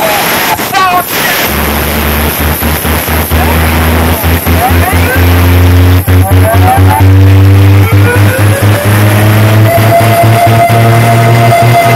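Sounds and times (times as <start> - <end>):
loud electronic dance music: 0.0 - 11.9
stuttering bass line: 0.0 - 11.9
gliding synth tone: 1.6 - 11.9.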